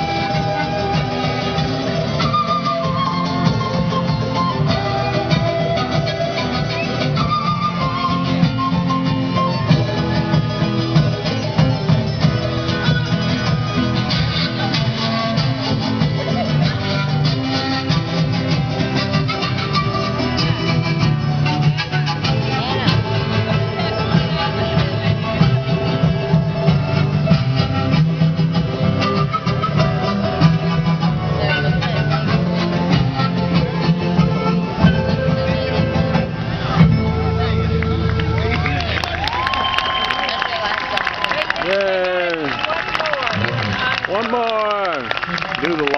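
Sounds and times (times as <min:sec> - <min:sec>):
live band playing: 0:00.0 - 0:45.9.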